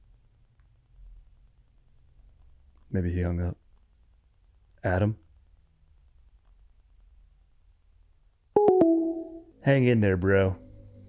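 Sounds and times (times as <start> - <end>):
descending phone line tone: 8.6 - 9.5.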